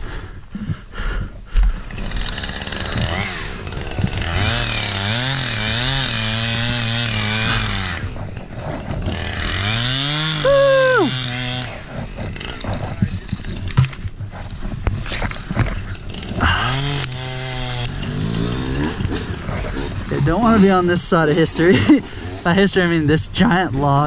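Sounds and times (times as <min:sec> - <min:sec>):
small two-stroke engine revving: 0:01.8 - 0:13.9, 0:15.0 - 0:20.9.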